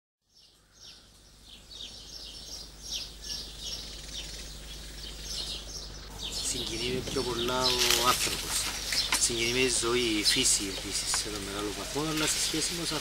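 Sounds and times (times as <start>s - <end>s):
birds chirping: 0.2s - 13.0s
low steady hum: 0.5s - 13.0s.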